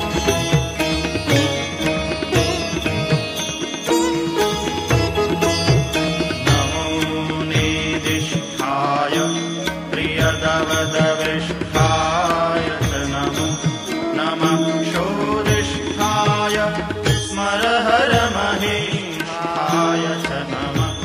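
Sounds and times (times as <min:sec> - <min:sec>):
instrumental accompaniment: 0:00.0 - 0:21.0.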